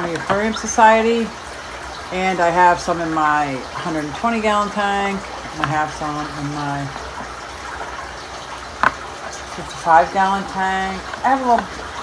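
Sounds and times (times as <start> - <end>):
aquarium water rushing: 0.0 - 12.0.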